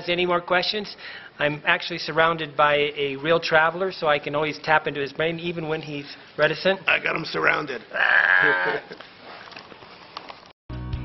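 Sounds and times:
man laughing: 0:07.9 - 0:09.0.

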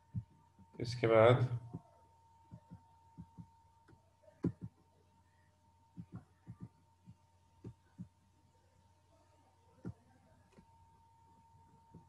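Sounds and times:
steady low hum: 0:00.0 - 0:12.0
dull taps of computer keys: 0:02.5 - 0:04.8, 0:06.0 - 0:08.1.

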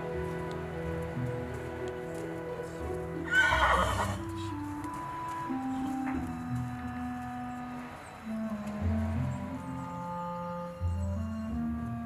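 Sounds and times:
music of held steady tones: 0:00.0 - 0:12.0
horse whinny: 0:03.2 - 0:04.3.

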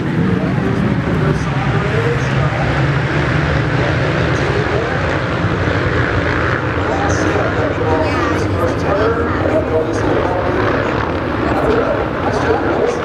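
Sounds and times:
motocross bike engines droning: 0:00.0 - 0:13.0
people's voices: 0:00.0 - 0:13.0.

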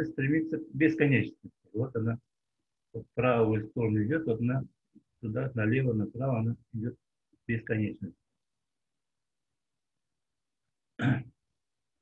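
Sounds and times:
man clearing throat: 0:11.0 - 0:11.3.

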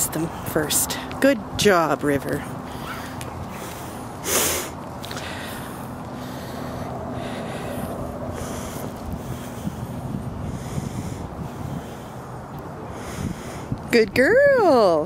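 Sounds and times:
steady low hum: 0:00.0 - 0:15.0
sharp puff of breath: 0:04.2 - 0:05.6
wind on microphone: 0:06.7 - 0:15.0.

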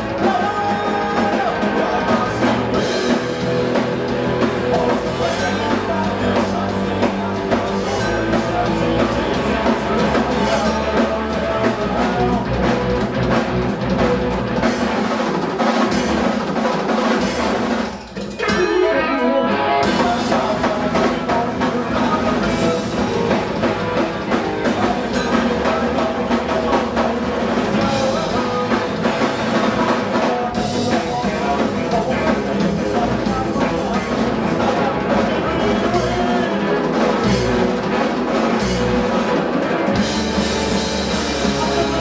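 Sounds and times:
drum kit: 0:00.0 - 0:42.0
electric guitar: 0:00.0 - 0:42.0
punk band playing live: 0:00.0 - 0:42.0.

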